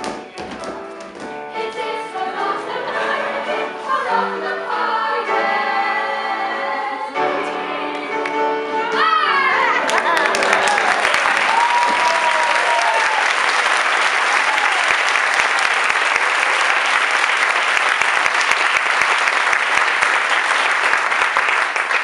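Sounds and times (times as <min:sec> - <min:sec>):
audience applauding: 0:09.6 - 0:22.0.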